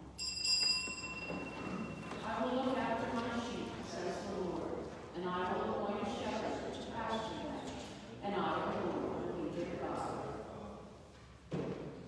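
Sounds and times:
small bell ringing: 0:00.1 - 0:02.0.

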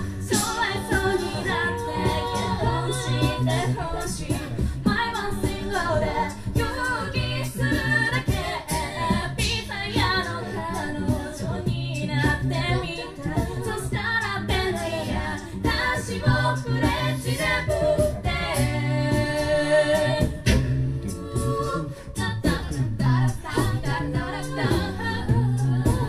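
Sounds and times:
a cappella group singing: 0:00.0 - 0:26.0
beatboxing: 0:00.0 - 0:26.0
sung bass line: 0:00.0 - 0:26.0.

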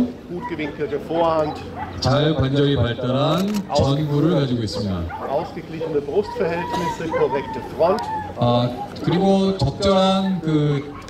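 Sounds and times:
dog barking: 0:00.4 - 0:02.1, 0:05.0 - 0:05.5, 0:10.1 - 0:11.0.

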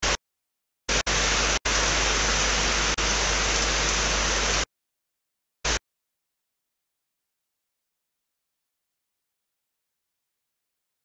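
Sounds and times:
static hiss: 0:00.0 - 0:00.2, 0:00.9 - 0:04.7.

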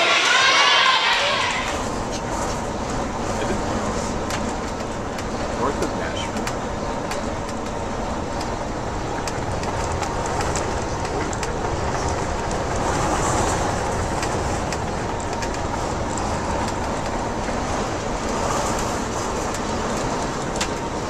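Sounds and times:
bus engine and tyre drone: 0:00.0 - 0:21.0.

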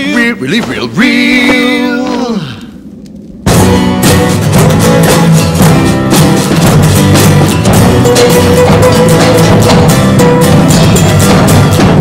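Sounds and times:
rock music with acoustic guitars: 0:03.4 - 0:12.0.

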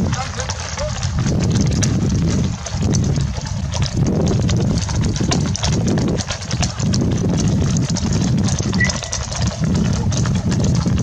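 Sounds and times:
horse hooves clip-clopping: 0:00.0 - 0:11.0
steady low rumble: 0:00.0 - 0:11.0
short high chirp: 0:08.8 - 0:09.2.

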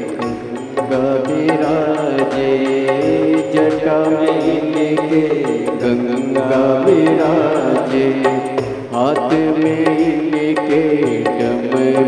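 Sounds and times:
person singing devotional music: 0:00.0 - 0:12.0
sharp percussion strikes: 0:00.0 - 0:12.0.

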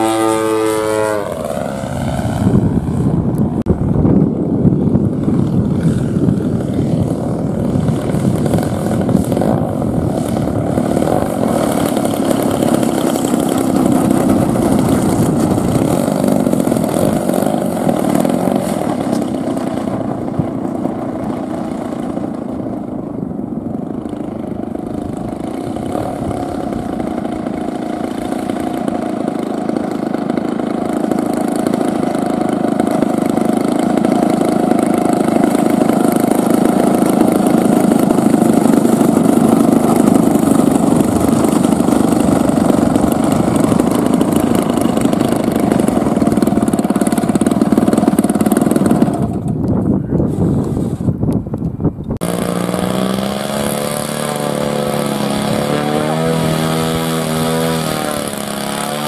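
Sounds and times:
model airplane engine and propeller: 0:00.0 - 0:59.0.

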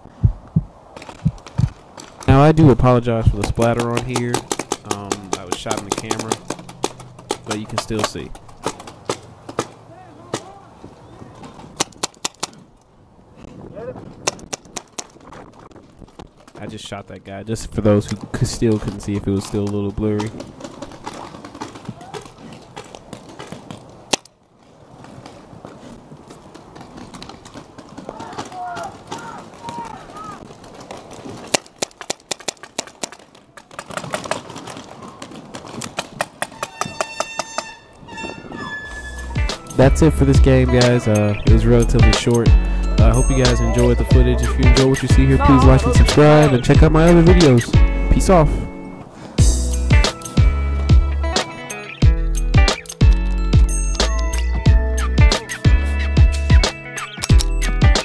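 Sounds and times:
paintball markers firing: 0:03.2 - 0:10.6, 0:11.4 - 0:12.7, 0:14.2 - 0:15.4, 0:18.1 - 0:24.3, 0:26.8 - 0:37.7
paintball marker shots: 0:03.3 - 0:10.5, 0:11.7 - 0:12.7, 0:14.2 - 0:15.2, 0:31.4 - 0:34.4.

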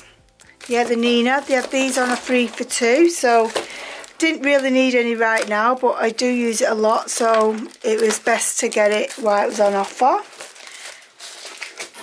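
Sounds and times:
cellophane crinkling and rustling: 0:00.0 - 0:12.0.

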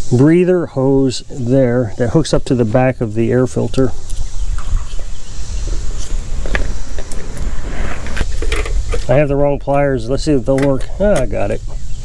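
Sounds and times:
steady low rumble: 0:00.5 - 0:12.0.

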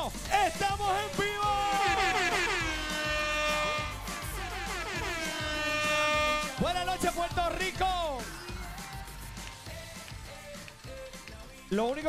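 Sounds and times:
game-show music stinger with horns: 0:01.0 - 0:07.4.

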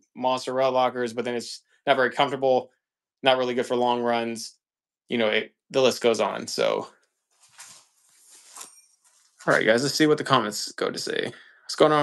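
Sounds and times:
person talking: 0:05.1 - 0:06.9, 0:09.4 - 0:12.0
rustling handling noise: 0:07.3 - 0:09.9.

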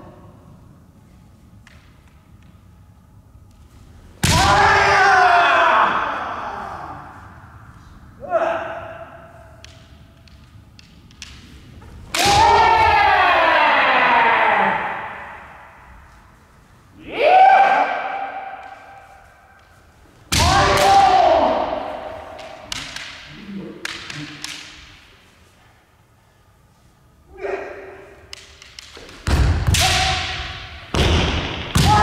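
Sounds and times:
long drawn-out shouts: 0:04.3 - 0:07.2, 0:08.2 - 0:09.3, 0:12.2 - 0:15.8, 0:17.0 - 0:19.0, 0:20.4 - 0:22.4, 0:31.8 - 0:32.0.

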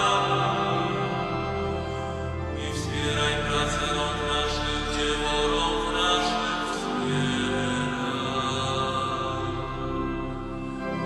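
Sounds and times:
pipe organ holding chords: 0:00.0 - 0:11.0
sung psalm chant: 0:00.0 - 0:11.0.

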